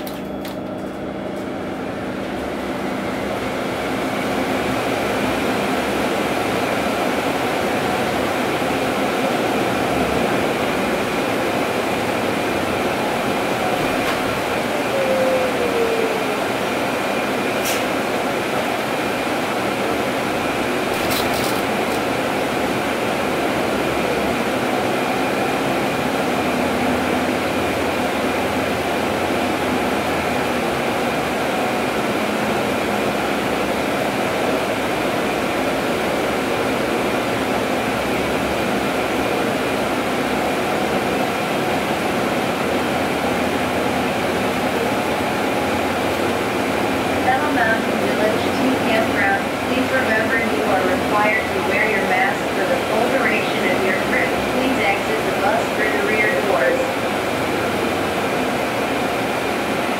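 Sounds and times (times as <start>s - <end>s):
bus cabin road noise: 0.0s - 59.9s.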